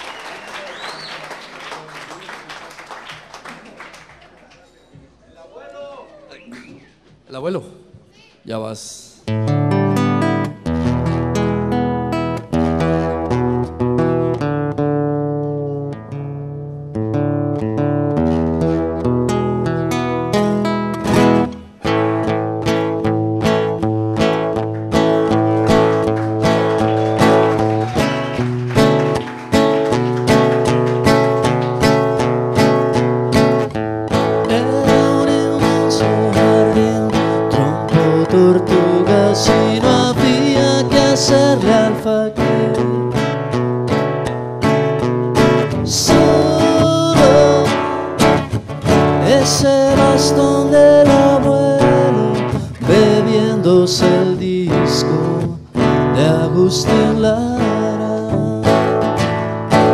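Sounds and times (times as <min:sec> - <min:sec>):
acoustic guitar playing: 0:09.2 - 0:59.9
man singing: 0:34.1 - 0:43.4, 0:45.7 - 0:59.9.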